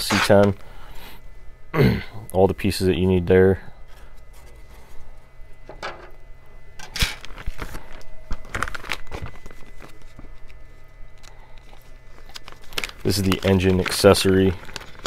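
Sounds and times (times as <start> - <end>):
plastic bags rustling: 6.8 - 15.0.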